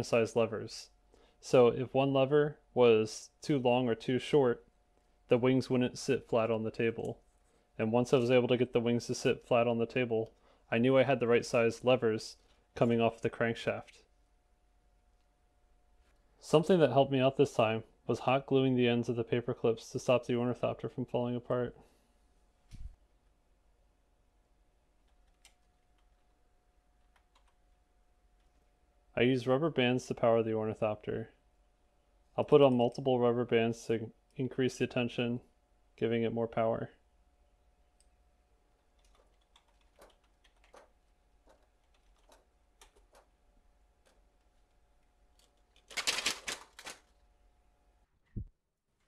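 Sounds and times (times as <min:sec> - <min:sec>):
faint steady hum: 0:00.0 - 0:49.0.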